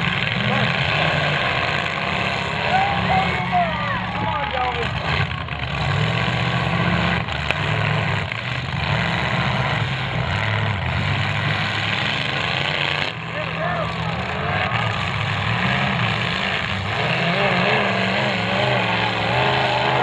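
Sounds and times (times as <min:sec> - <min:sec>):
car engines revving: 0:00.0 - 0:20.0
cars ramming each other: 0:00.0 - 0:20.0.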